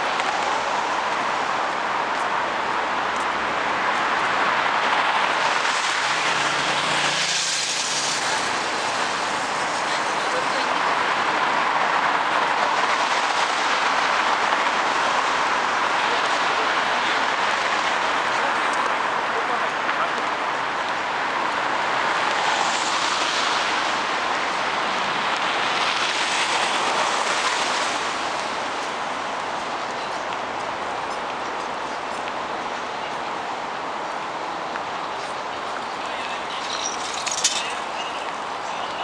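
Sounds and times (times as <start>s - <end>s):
city street traffic: 0.0s - 39.0s.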